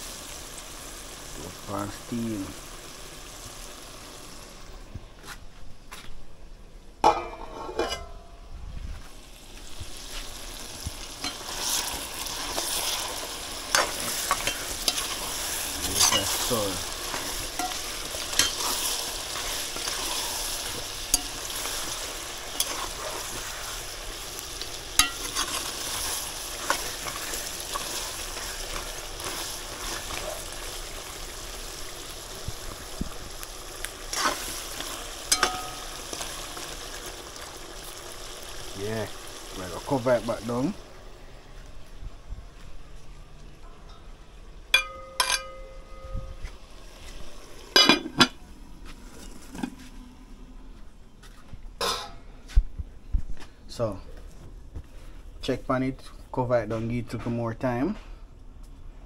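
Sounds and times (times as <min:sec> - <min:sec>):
chicken sizzling in a metal pot: 0:00.0 - 0:04.9, 0:09.1 - 0:41.8, 0:43.9 - 0:49.9
metal spoon knocking pot: 0:44.8 - 0:46.2.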